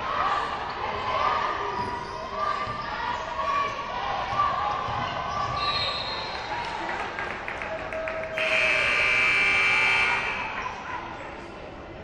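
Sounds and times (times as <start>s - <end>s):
arena horn buzzing: 8.4s - 10.4s.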